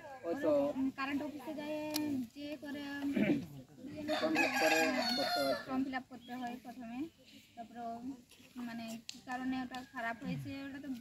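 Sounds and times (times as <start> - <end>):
rooster crowing: 4.1 - 5.7.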